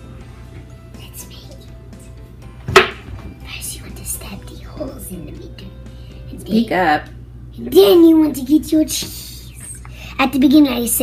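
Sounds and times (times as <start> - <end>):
faint background tv sound: 0.8 - 2.3, 3.1 - 11.0
sharp smack: 2.7 - 3.1.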